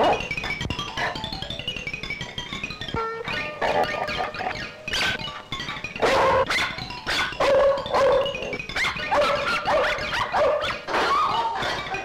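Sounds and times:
dog barking and yapping: 0.0s - 0.3s, 6.0s - 12.0s
comic film music: 0.0s - 12.0s.

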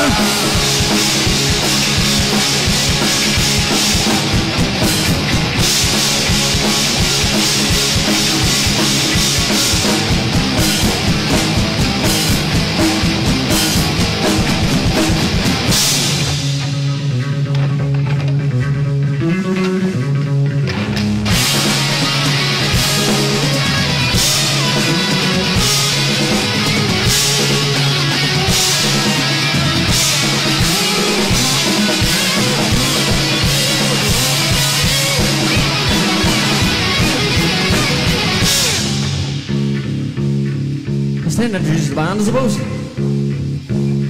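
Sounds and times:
drums and cymbals: 0.0s - 18.4s, 21.2s - 44.0s
rock band playing: 0.0s - 44.0s.

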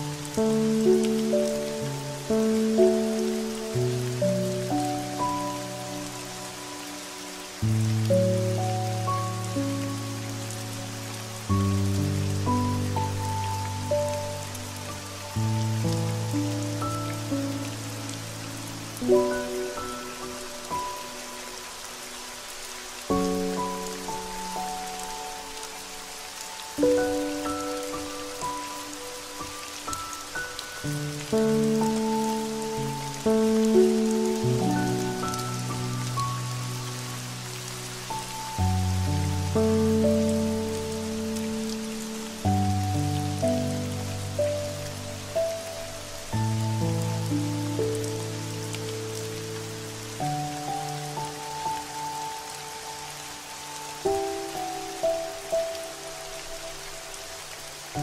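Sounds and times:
slow mellow music: 0.0s - 58.0s
steady rain falling: 0.0s - 58.0s.

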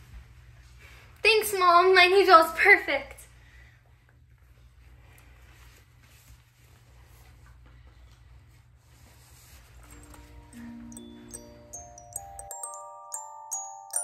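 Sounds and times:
slow glockenspiel melody: 9.9s - 14.0s.

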